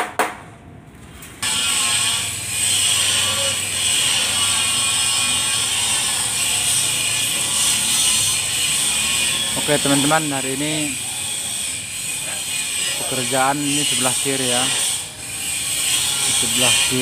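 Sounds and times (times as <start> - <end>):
hissing power tool on metal: 1.4 - 17.0.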